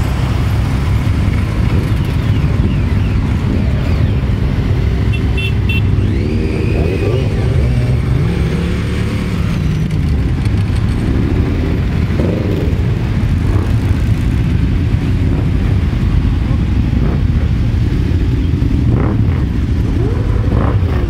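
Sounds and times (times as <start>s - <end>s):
motorcycles riding off: 0.0s - 21.0s.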